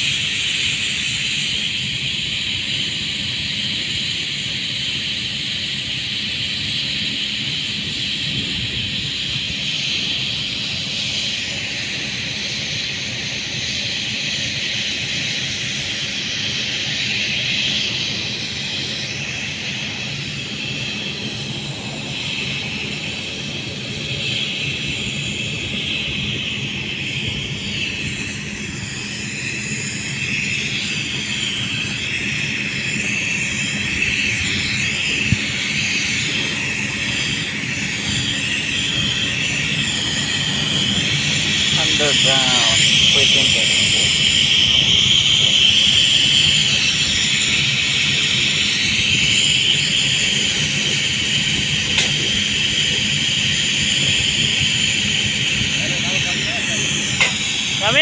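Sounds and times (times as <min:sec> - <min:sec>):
machine drone: 0:00.0 - 0:58.0
spray hissing: 0:00.0 - 0:58.0.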